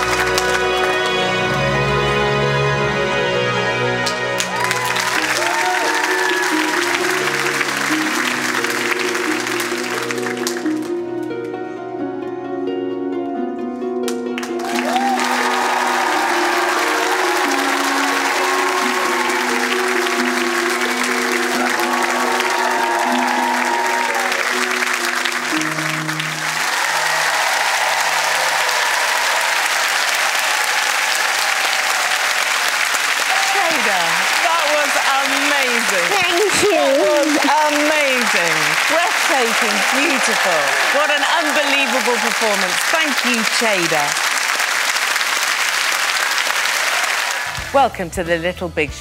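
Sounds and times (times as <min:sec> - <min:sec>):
audience applauding: 0:00.0 - 0:11.1, 0:14.1 - 0:47.7
performance music: 0:00.0 - 0:49.0.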